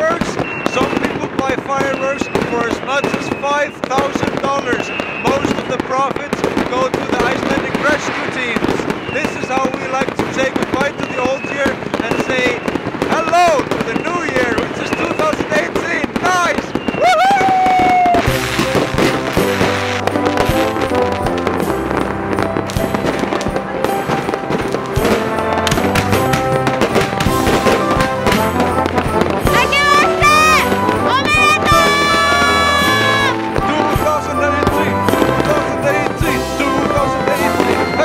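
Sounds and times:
fireworks banging and crackling: 0:00.0 - 0:38.0
people shouting and cheering: 0:16.1 - 0:21.4, 0:22.9 - 0:38.0
background music with bass: 0:18.3 - 0:31.2.

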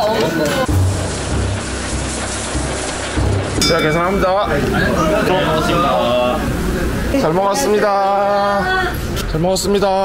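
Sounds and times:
meat sizzling on grill: 0:00.4 - 0:09.2
background music bass: 0:00.7 - 0:07.2.

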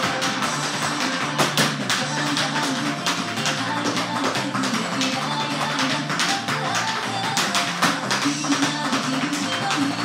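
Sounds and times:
backing music: 0:00.0 - 0:10.0
tap shoes on wooden floor: 0:00.0 - 0:10.0.

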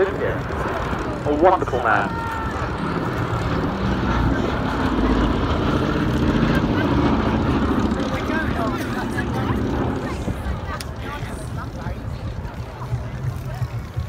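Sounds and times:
propeller plane flying past: 0:00.0 - 0:14.0.

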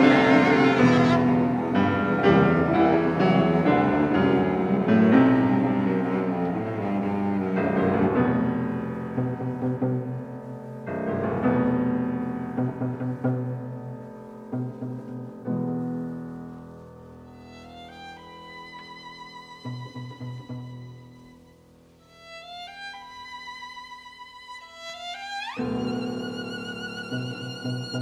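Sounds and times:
piano chords: 0:00.0 - 0:23.4
cello low sustained notes: 0:00.0 - 0:28.0.

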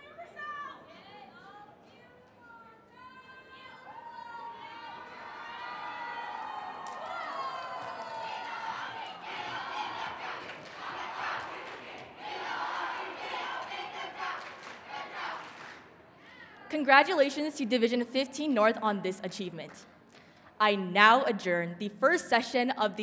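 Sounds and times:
crowd cheering and shouting: 0:03.0 - 0:11.4
people clapping: 0:05.4 - 0:16.4.

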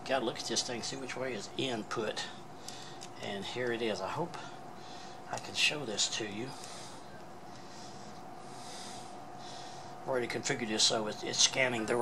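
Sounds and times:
breathing through the nose: 0:06.5 - 0:10.0.

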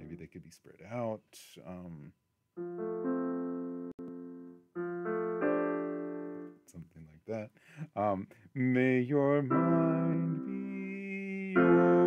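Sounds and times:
piano chords: 0:02.6 - 0:06.7, 0:09.4 - 0:12.0.

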